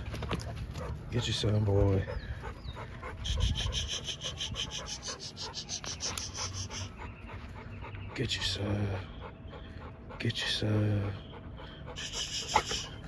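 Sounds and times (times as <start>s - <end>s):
dog panting: 0.0s - 13.0s.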